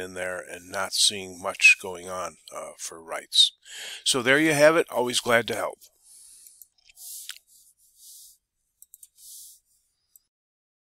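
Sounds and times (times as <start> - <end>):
computer mouse clicks: 8.8 - 9.2.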